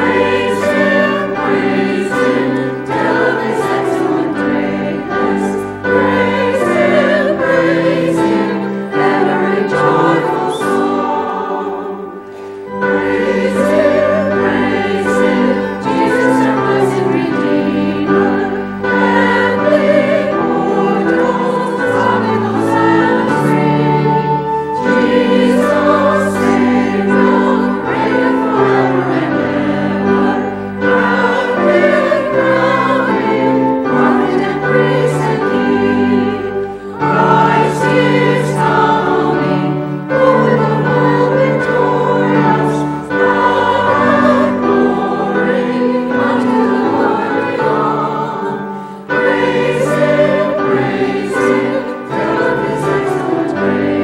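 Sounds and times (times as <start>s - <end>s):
church choir singing a hymn: 0.0s - 54.0s
instrumental accompaniment: 0.0s - 54.0s.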